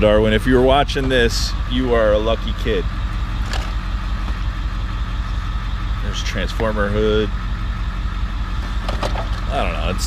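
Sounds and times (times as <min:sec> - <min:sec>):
bus engine idling: 0:00.0 - 0:10.0.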